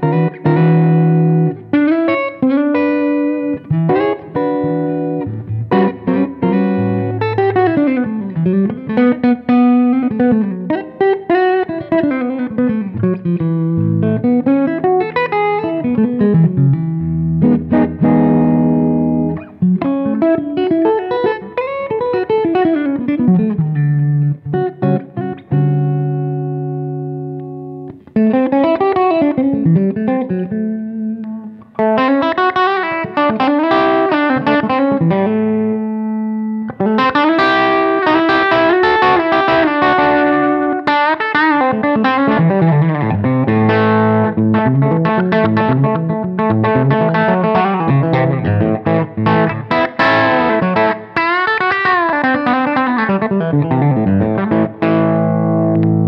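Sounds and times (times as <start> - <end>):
clean electric guitar playing: 0.0 - 56.0.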